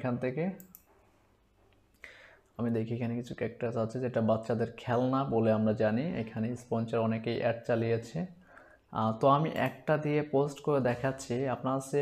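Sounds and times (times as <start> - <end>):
computer mouse clicking: 0.6 - 0.9.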